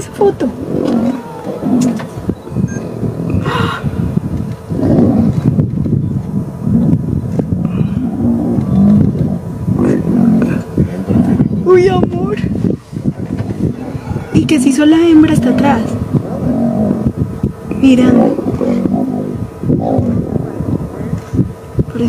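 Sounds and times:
lions growling: 0.4s - 4.1s, 4.7s - 5.6s, 6.6s - 11.6s, 13.1s - 21.1s.

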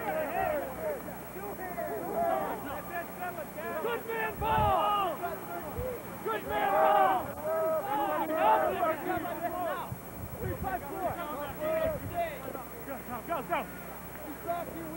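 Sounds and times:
people shouting: 0.0s - 9.9s.

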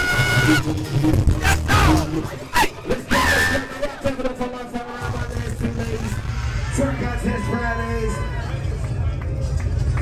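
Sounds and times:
club music: 0.0s - 7.4s
crowd chatter: 1.4s - 10.0s.

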